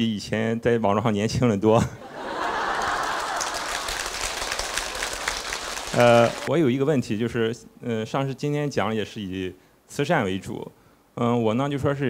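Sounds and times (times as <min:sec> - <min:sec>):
audience laughing: 0:02.0 - 0:06.5
audience applauding: 0:02.2 - 0:06.5.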